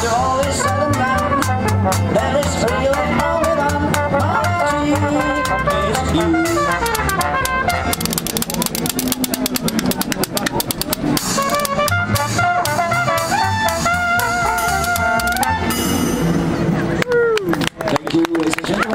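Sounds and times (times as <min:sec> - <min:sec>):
trumpet: 0:00.0 - 0:09.2, 0:11.2 - 0:16.6
trombone: 0:00.0 - 0:09.8, 0:11.2 - 0:16.6
banjo: 0:00.0 - 0:16.9
double bass: 0:00.0 - 0:17.3
percussion with cymbals: 0:06.2 - 0:16.8.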